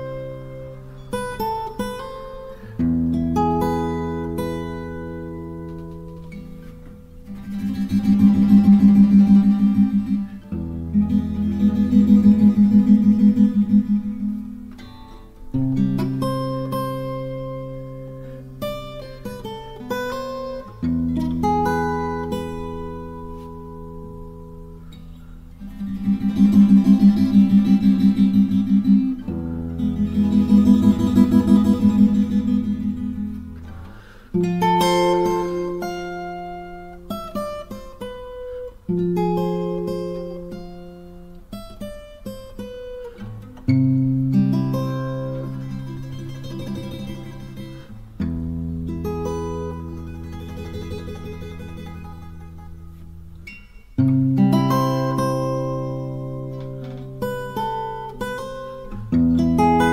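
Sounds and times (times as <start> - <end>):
acoustic guitar fingerpicking and strumming: 0.0 - 59.9.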